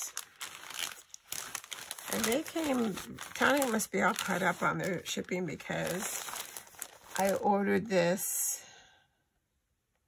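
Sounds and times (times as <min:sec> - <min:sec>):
plastic bag crinkling: 0:00.0 - 0:07.7.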